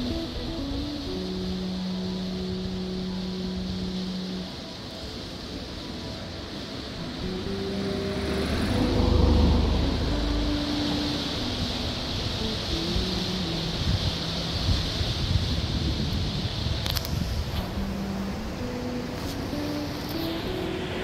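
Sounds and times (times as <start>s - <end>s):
river rushing over rapids: 0.0s - 21.0s
soft background music: 0.0s - 21.0s
vehicle passing by: 7.0s - 14.9s, 18.2s - 21.0s.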